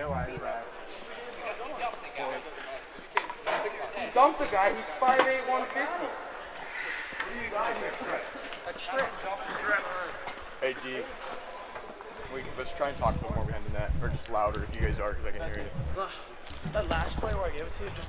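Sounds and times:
voices talking and shouting: 0:00.0 - 0:18.0.

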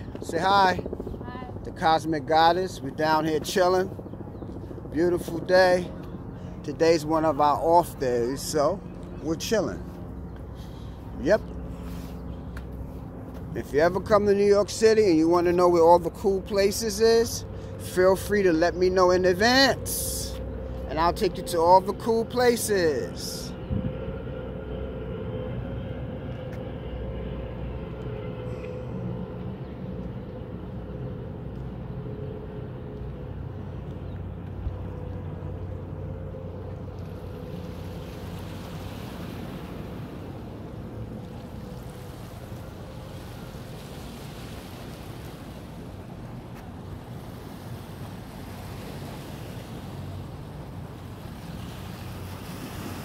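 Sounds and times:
motorboat engine humming: 0:00.0 - 0:53.0
low rumble: 0:17.4 - 0:48.8
wind on microphone: 0:23.6 - 0:24.2.

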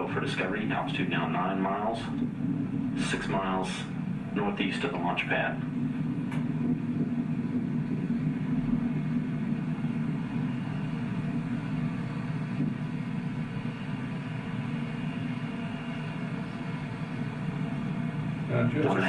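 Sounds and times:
rocket engines rumbling over loudspeakers: 0:00.0 - 0:19.0.

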